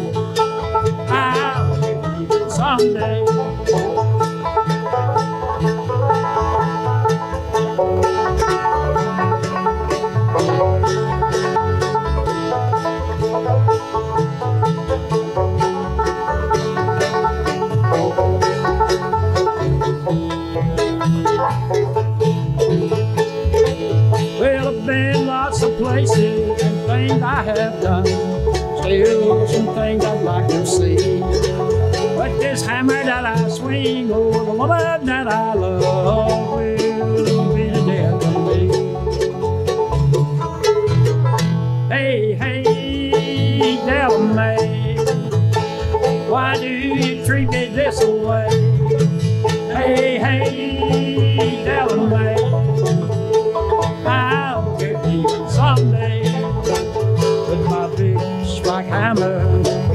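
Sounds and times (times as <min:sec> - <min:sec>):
banjo: 0:00.0 - 0:59.9
bluegrass band instrumental: 0:00.0 - 0:59.9.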